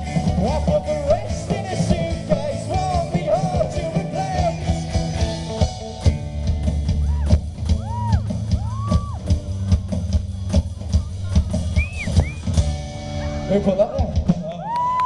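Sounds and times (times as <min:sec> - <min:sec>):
drum kit hitting: 0:00.0 - 0:14.6
rock band playing: 0:00.0 - 0:15.0
gliding high guitar notes: 0:12.5 - 0:13.9.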